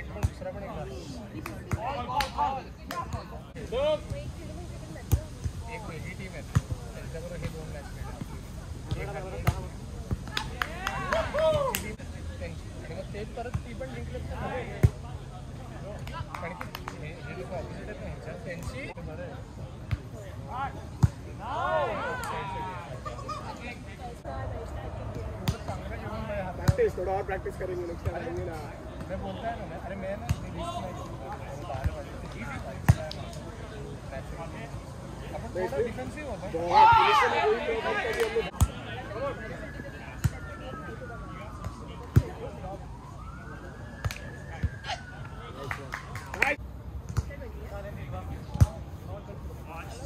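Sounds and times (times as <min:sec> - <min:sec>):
players calling out: 0:35.4 - 0:42.7.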